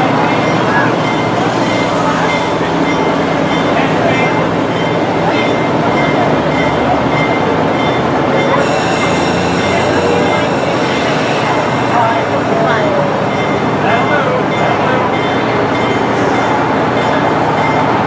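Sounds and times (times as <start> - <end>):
people chatting: 0.0 - 18.0
train cars rumbling and rattling: 0.0 - 18.0
train hiss: 8.6 - 13.8.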